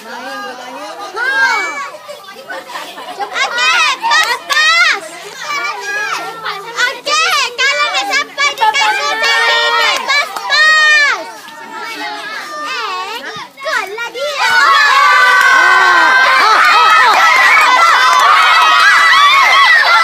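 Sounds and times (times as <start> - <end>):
children shouting: 0.2 - 20.0.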